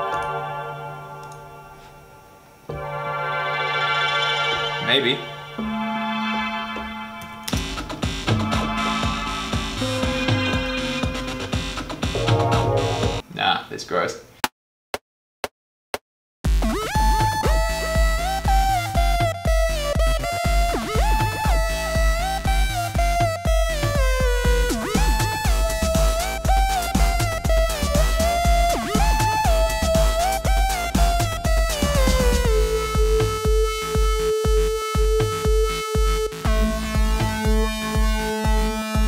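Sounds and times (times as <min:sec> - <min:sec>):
kick drum and bass: 0:07.6 - 0:13.2, 0:16.5 - 0:39.0
sliding synth lead: 0:08.4 - 0:13.2.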